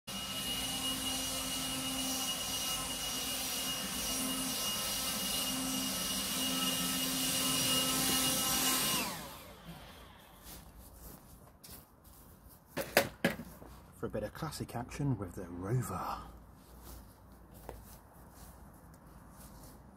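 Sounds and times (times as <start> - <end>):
leaf blower whining: 0.1 - 10.9.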